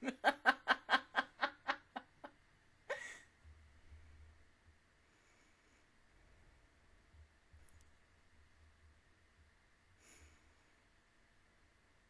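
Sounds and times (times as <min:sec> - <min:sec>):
woman laughing: 0:00.0 - 0:02.3, 0:02.9 - 0:03.2.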